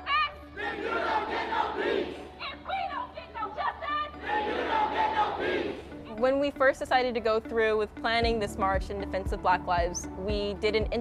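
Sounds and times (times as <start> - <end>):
crowd of protesters shouting: 0.2 - 2.4, 4.1 - 5.9.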